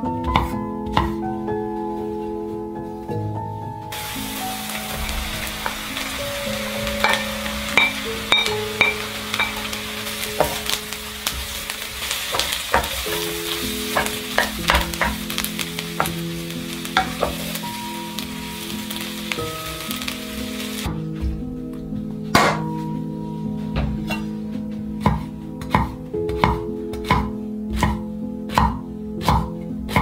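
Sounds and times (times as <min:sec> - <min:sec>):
background music: 0:00.0 - 0:30.0
food sizzling in frying pan: 0:03.9 - 0:20.9.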